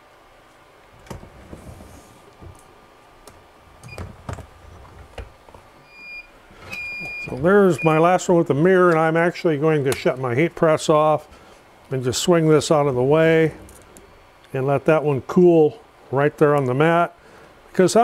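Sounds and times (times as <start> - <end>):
heat press knocks and clicks: 1.0 - 1.7.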